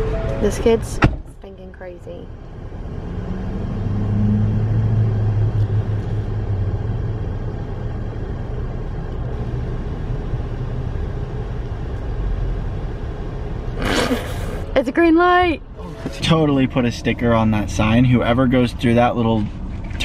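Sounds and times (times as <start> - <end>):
passing road traffic: 0.0 - 20.0
vehicle engine idling: 5.0 - 20.0.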